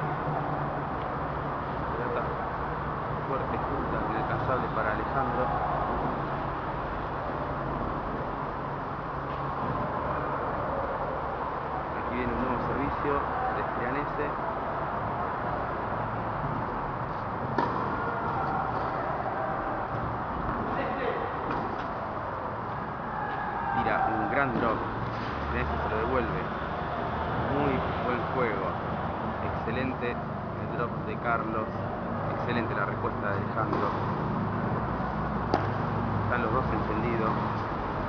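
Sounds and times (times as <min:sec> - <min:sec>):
steady background hum: 0:00.0 - 0:38.0
tennis ball struck by rackets: 0:17.1 - 0:19.3, 0:21.4 - 0:22.0, 0:33.6 - 0:36.2.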